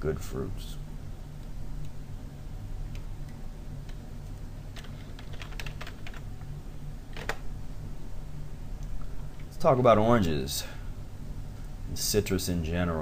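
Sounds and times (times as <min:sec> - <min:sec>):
low steady hum: 0:00.0 - 0:13.0
typing on computer keyboard: 0:04.8 - 0:06.3.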